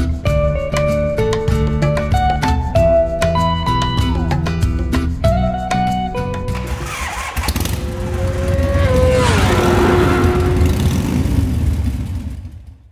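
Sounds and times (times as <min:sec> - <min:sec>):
guitar music: 0:00.0 - 0:11.2
motorcycle engine riding by: 0:06.6 - 0:12.9.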